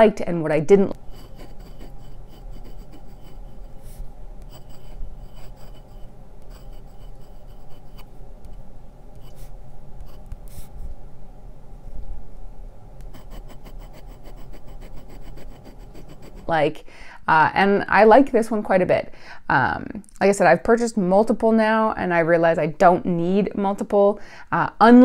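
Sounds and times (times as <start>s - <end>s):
pen nib scratching paper: 1.0s - 8.1s, 9.2s - 10.7s, 13.0s - 16.5s.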